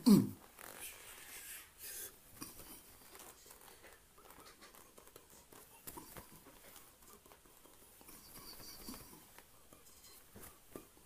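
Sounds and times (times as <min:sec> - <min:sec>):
soft taps and rustles: 0:02.3 - 0:11.0.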